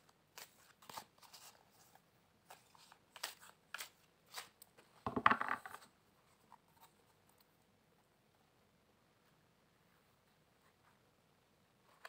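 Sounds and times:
cards being shuffled: 0.3s - 4.6s.

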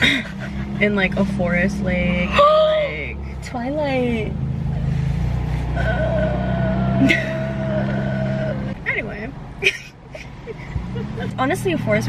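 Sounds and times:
woman laughing: 0.0s - 1.0s, 7.0s - 7.6s, 9.6s - 11.4s.

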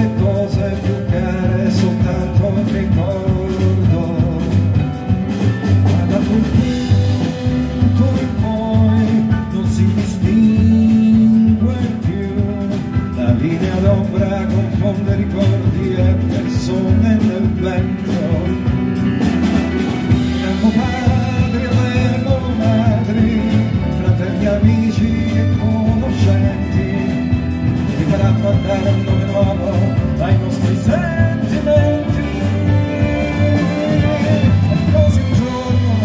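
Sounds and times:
double bass: 0.0s - 36.0s
drums: 0.0s - 36.0s
guitar: 0.0s - 36.0s
jazz band and orchestra playing: 0.0s - 36.0s
piano: 0.0s - 36.0s.

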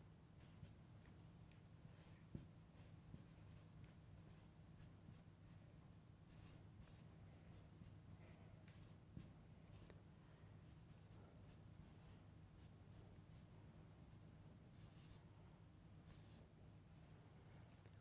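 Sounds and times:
low steady hum: 0.0s - 18.0s
marker pen writing on whiteboard: 1.9s - 5.3s, 6.3s - 8.0s, 8.6s - 9.9s, 14.8s - 15.2s, 16.1s - 16.4s.

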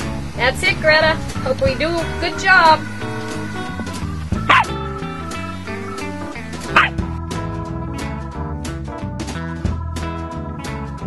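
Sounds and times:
guitar music: 0.0s - 11.0s
small dog yipping: 4.5s - 4.7s, 6.7s - 7.0s.

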